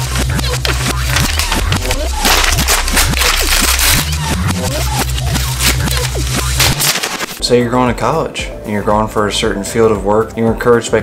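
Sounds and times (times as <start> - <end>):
paper ripping: 0.0 - 7.4
electronic music with heavy bass: 0.0 - 7.7.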